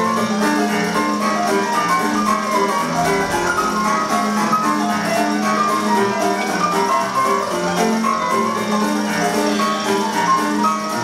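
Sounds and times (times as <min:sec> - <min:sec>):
instrumental music with steady beat: 0:00.0 - 0:11.0.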